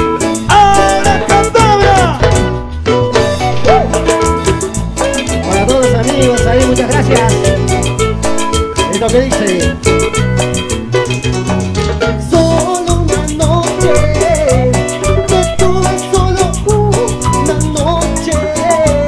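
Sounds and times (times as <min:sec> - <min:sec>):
wavering lead melody: 0:00.0 - 0:18.5
bass: 0:00.0 - 0:19.0
percussion beat: 0:00.0 - 0:19.0.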